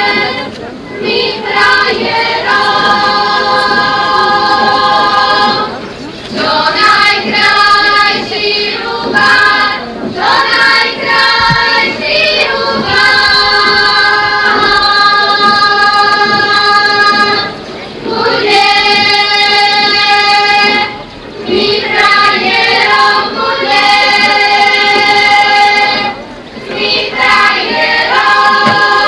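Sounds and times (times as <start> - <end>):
choir singing folk song: 0.0 - 29.0.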